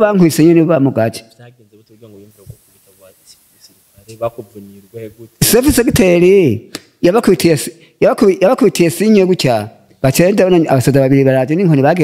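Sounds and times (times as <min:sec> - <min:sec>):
faint high hiss: 0:00.0 - 0:12.0
people talking: 0:00.0 - 0:12.0
man speaking quietly: 0:01.4 - 0:05.3.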